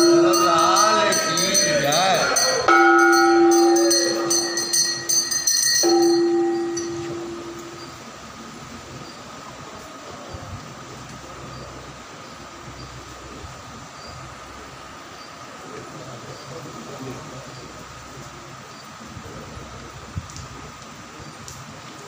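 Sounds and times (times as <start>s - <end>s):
temple bells ringing: 0.0s - 8.7s
conch shell blasts: 2.2s - 8.0s.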